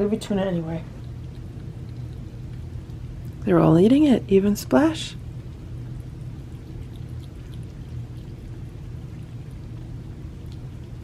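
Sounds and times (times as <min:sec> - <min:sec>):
cats chewing and licking: 0:00.0 - 0:11.0
steady low hum: 0:00.0 - 0:11.0.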